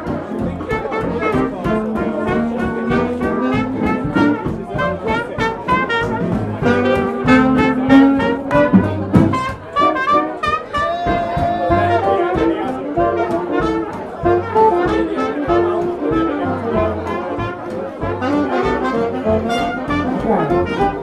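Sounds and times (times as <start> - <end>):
drums on cymbal and snare: 0.0 - 16.9
brass lead line: 0.0 - 21.0
jazz band playing swing: 0.0 - 21.0.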